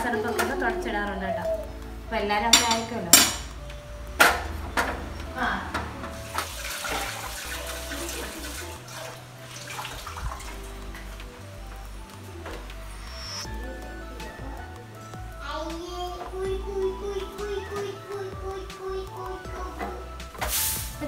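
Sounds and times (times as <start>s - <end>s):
steel kitchenware clinking: 2.5s - 3.6s.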